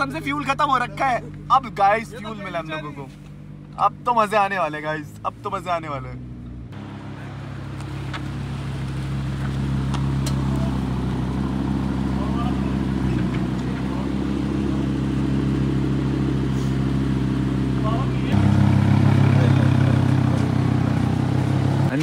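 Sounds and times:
sports car engine running slowly: 0:00.0 - 0:04.1, 0:06.2 - 0:22.0.

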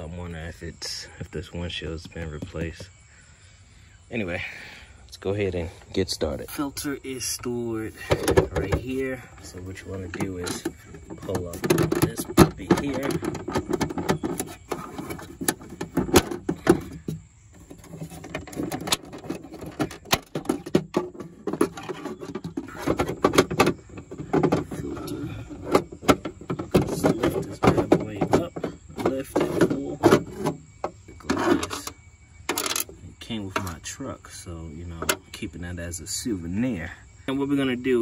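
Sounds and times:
hard plastic parts clicking and knocking: 0:01.9 - 0:03.0, 0:07.9 - 0:33.8, 0:34.9 - 0:35.3.

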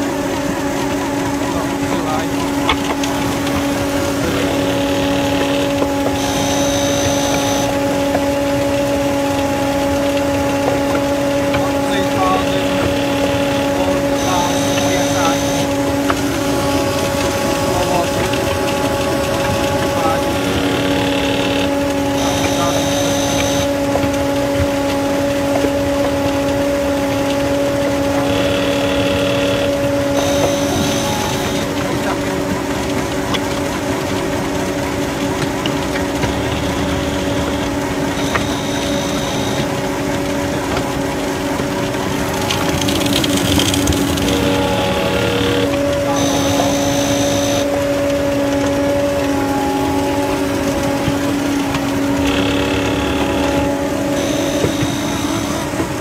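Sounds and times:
concrete mixer running: 0:00.0 - 0:56.0.

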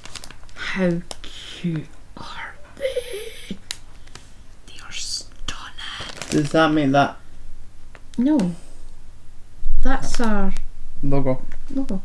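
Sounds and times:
plastic bag rustling: 0:00.0 - 0:01.2, 0:03.5 - 0:04.4, 0:05.7 - 0:07.1
soft voice murmur: 0:01.3 - 0:03.6.

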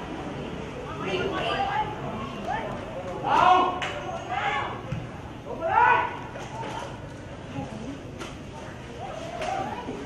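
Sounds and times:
voices shouting: 0:00.9 - 0:07.0.

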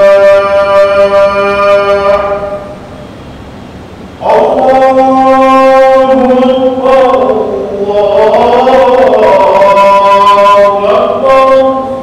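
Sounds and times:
man chanting: 0:00.0 - 0:02.8, 0:04.2 - 0:12.0
low hum: 0:00.0 - 0:12.0.

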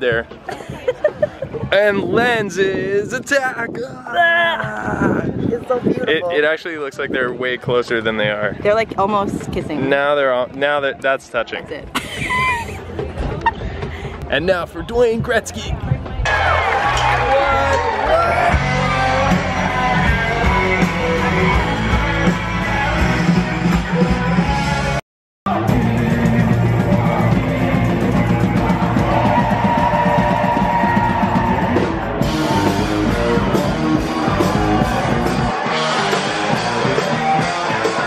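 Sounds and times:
live rock band with singing: 0:18.1 - 0:38.0.

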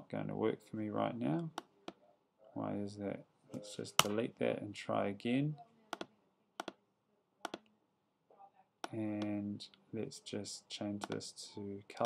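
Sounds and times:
computer mouse clicks: 0:05.9 - 0:06.8, 0:07.4 - 0:07.7.

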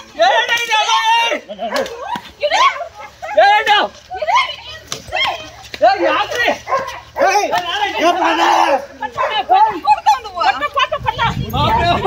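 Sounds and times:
people shouting: 0:00.0 - 0:12.0
dog barking: 0:01.6 - 0:02.0, 0:06.6 - 0:07.4, 0:09.1 - 0:09.5.

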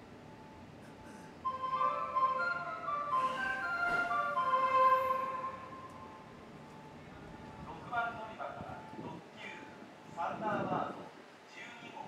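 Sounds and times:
electronic chime melody: 0:01.5 - 0:07.0.

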